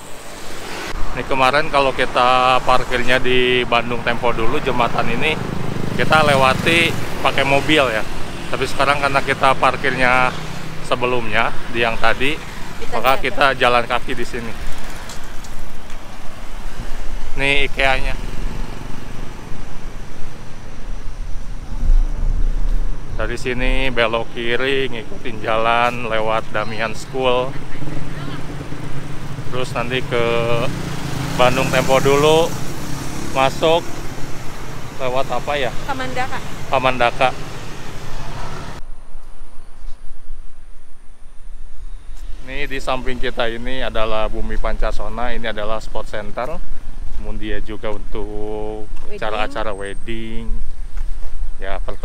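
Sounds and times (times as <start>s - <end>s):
cars passing: 0.0s - 52.0s
steady road hiss: 0.0s - 52.0s
traffic rumble: 0.0s - 52.0s
uneven low rumble: 21.2s - 25.4s.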